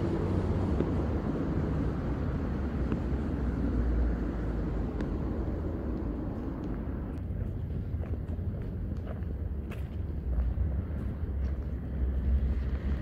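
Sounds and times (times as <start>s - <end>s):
distant traffic rumble: 0.0s - 13.0s.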